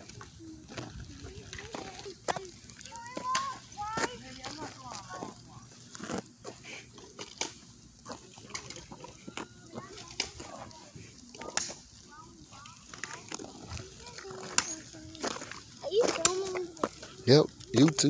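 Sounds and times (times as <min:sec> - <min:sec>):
distant children's voices: 0:00.0 - 0:18.0.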